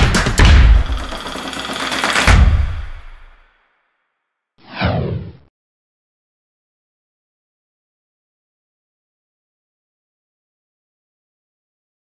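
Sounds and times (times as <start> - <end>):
falling whoosh: 4.6 - 5.4.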